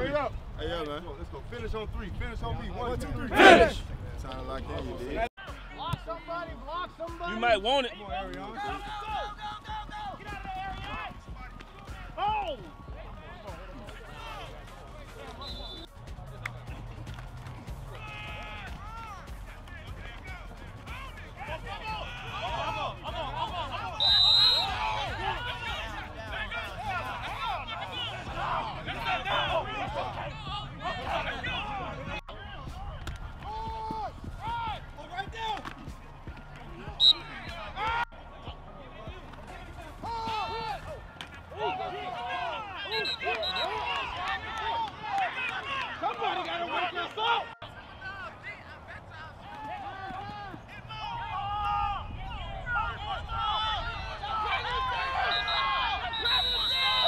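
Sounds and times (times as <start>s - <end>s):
indistinct shouting voices: 3.2s - 3.9s, 17.9s - 35.7s, 36.3s - 57.0s
short high whistle blast: 24.0s - 24.8s, 55.2s - 57.0s.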